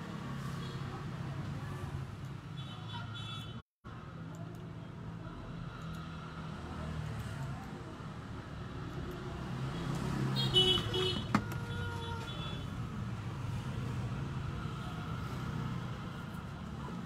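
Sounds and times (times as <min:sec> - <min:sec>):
low rumble of road traffic: 0:00.0 - 0:17.0.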